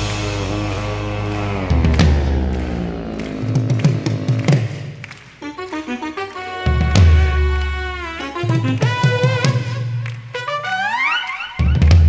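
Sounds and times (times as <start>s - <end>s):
metal band playing live: 0.0s - 4.8s
drum hits: 0.0s - 5.0s.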